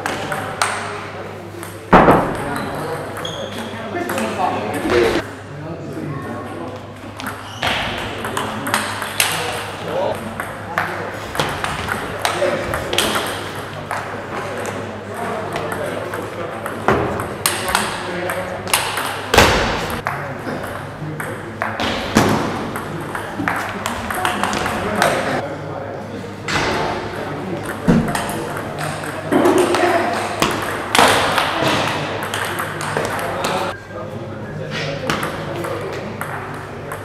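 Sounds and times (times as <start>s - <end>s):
ball bouncing on table: 1.6s - 3.4s, 7.2s - 14.0s, 15.5s - 25.2s, 27.6s - 33.6s, 35.1s - 37.0s.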